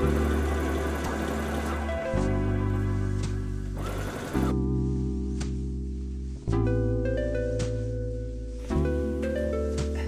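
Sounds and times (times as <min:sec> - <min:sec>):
background music sustained chords: 0:00.0 - 0:10.0
sewing machine stitching fabric: 0:03.8 - 0:04.5.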